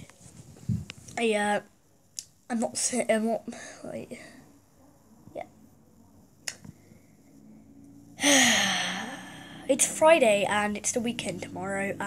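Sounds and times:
boy speaking: 1.2s - 1.7s, 9.7s - 12.0s.

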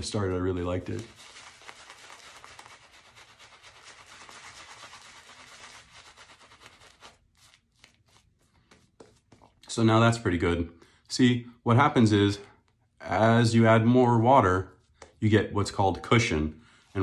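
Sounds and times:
shaving brush scrubbing lather: 0.0s - 8.8s.

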